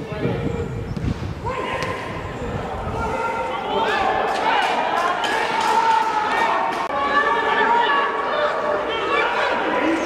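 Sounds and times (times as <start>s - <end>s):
footballers shouting: 1.4s - 10.0s.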